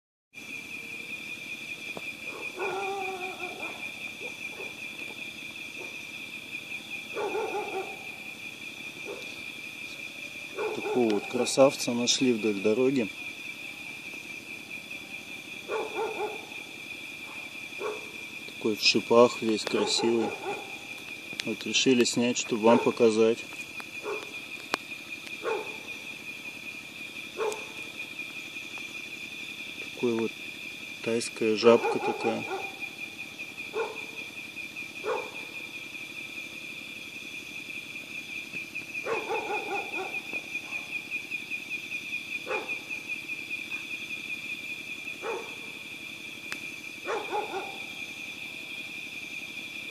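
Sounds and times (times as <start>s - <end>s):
night insects droning: 0.3s - 49.9s
dog barking: 2.2s - 5.2s, 5.8s - 6.1s, 7.1s - 8.2s, 9.0s - 9.4s, 10.5s - 11.5s, 15.7s - 16.6s, 17.2s - 18.2s, 19.7s - 20.9s, 22.6s - 23.0s, 24.0s - 24.4s, 25.4s - 25.9s, 27.4s - 27.8s, 31.6s - 32.9s, 33.7s - 34.2s, 35.0s - 35.6s, 39.0s - 41.0s, 42.4s - 42.9s, 45.2s - 45.7s, 47.0s - 48.0s.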